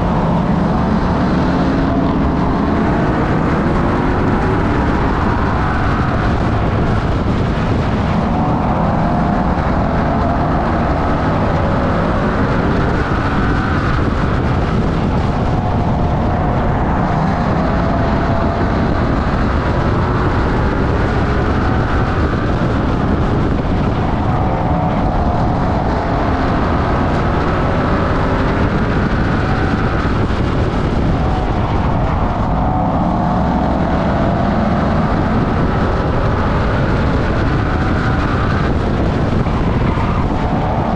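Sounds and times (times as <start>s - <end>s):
race car engine at speed: 0.0s - 40.9s.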